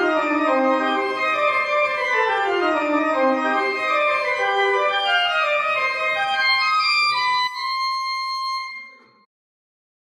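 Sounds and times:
church organ chord: 0:00.0 - 0:09.3.

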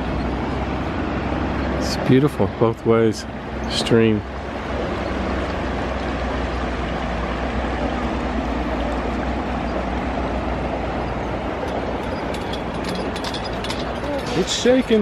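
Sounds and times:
river flowing over rocks: 0:00.0 - 0:15.0.

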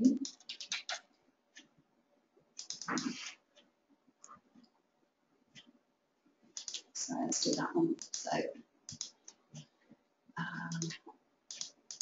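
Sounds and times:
keyboard keystrokes: 0:00.2 - 0:01.0, 0:02.6 - 0:03.1, 0:06.6 - 0:08.3, 0:08.9 - 0:09.2, 0:10.7 - 0:12.0.

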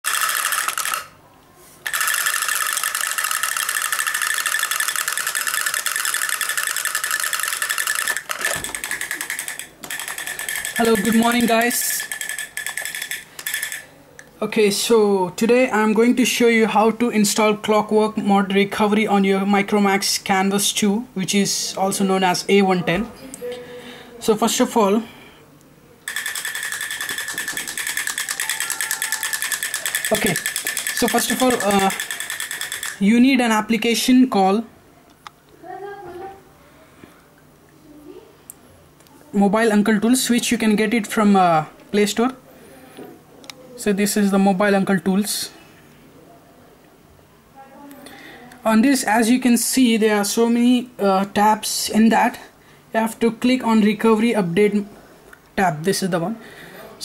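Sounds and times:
toy drums mechanical clatter: 0:00.0 - 0:01.2, 0:01.8 - 0:13.9, 0:26.1 - 0:33.1
steady high tone: 0:26.1 - 0:33.0.

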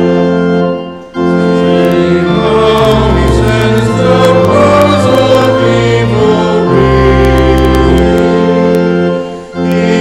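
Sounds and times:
congregation singing a hymn: 0:00.0 - 0:10.0
organ chords: 0:00.0 - 0:10.0.

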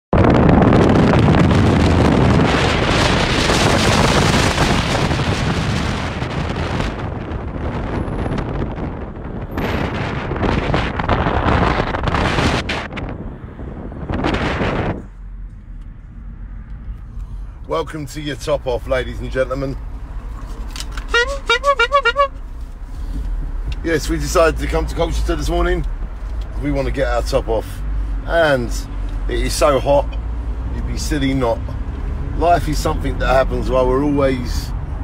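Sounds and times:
wind buffeting microphone: 0:00.1 - 0:16.0
road and engine noise: 0:00.1 - 0:35.0.

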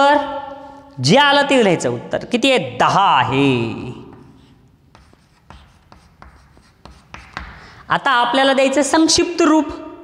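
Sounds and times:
chalk tapping and scraping on board: 0:04.1 - 0:07.8.

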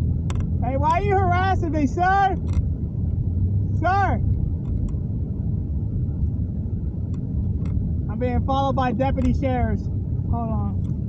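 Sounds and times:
car rumble from inside cabin: 0:00.0 - 0:11.0
man shouting: 0:00.8 - 0:02.4, 0:03.8 - 0:04.2.

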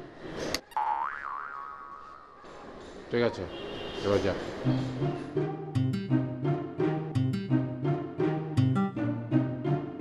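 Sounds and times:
comic boing sound effect: 0:00.8 - 0:02.4.

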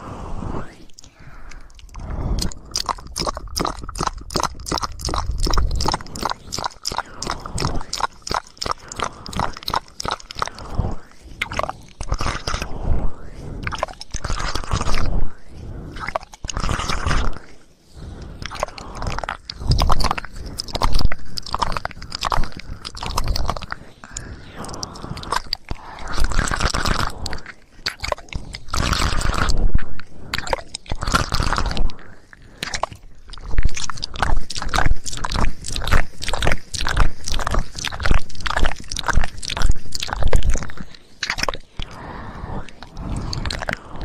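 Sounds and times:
scratchy crackly noises: 0:00.0 - 0:44.0.

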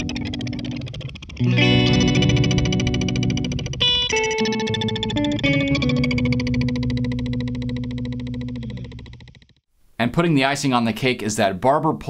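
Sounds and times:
electric guitar with pulsing delay: 0:00.0 - 0:09.4.

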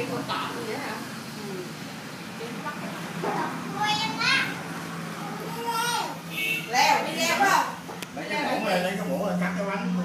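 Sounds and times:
young children calling: 0:03.7 - 0:04.6, 0:05.2 - 0:06.3.

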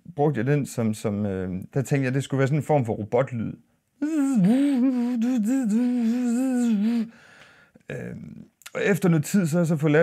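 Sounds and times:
man humming buzzy tone: 0:04.0 - 0:07.2.

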